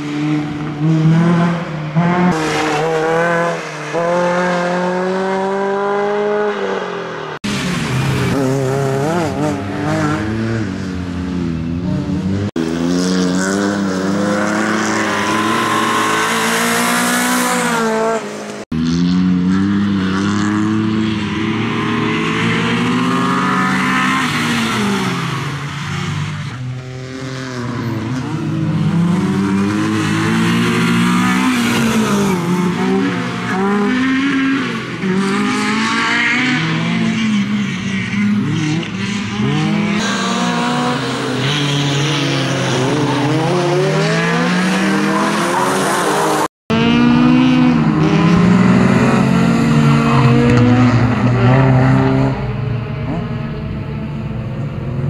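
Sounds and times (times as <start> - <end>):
rally car engine revving: 0.0 - 55.0.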